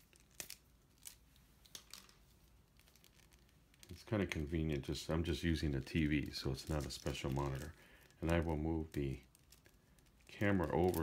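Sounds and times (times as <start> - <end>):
cable clicks and rustles: 0.0 - 11.0.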